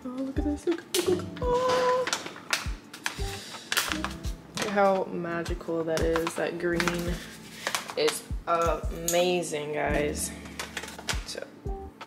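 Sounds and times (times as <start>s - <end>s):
background music: 0.0s - 12.0s
paper pouch crinkling: 6.0s - 8.0s.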